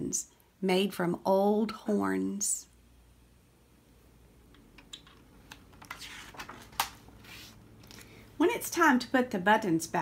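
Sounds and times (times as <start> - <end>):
book pages clicking and tapping: 4.7 - 7.5
paper rustles: 5.8 - 7.6.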